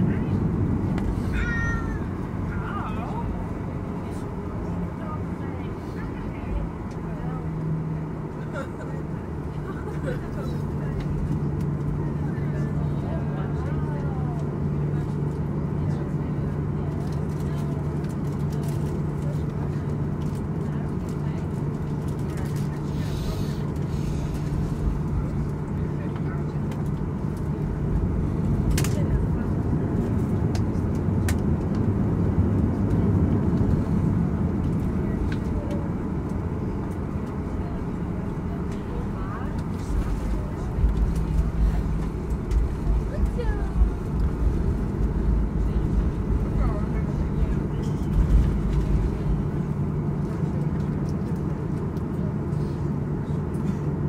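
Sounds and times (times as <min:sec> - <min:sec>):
aircraft engine hum: 0:00.0 - 0:54.0
indistinct passenger voices: 0:00.0 - 0:54.0
wheels rumbling: 0:00.0 - 0:54.0.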